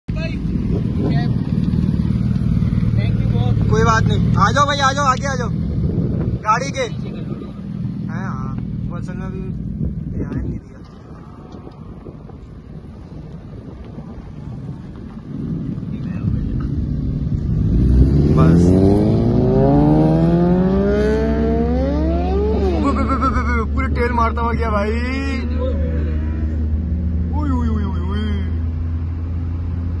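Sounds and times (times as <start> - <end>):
motorcycle engine idling: 0.2 - 6.1
car engine and tyres drone: 0.2 - 30.0.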